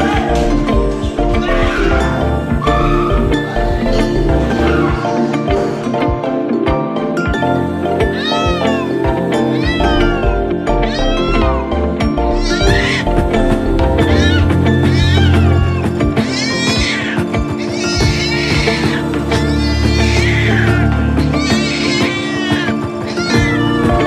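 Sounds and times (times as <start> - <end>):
music: 0.0 - 24.0
cat meowing: 8.2 - 8.9, 9.6 - 11.6, 12.3 - 13.3, 14.1 - 24.0.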